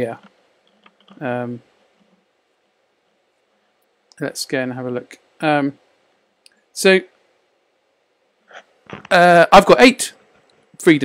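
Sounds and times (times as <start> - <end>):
person speaking: 0.0 - 0.4, 1.0 - 1.8, 8.5 - 10.2.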